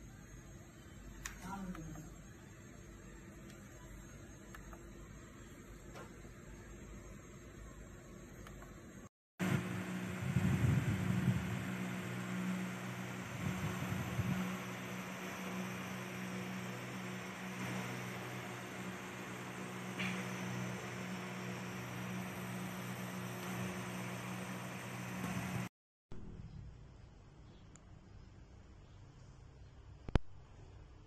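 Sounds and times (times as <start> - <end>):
air cooler fan humming: 0.0 - 6.8, 9.4 - 25.7.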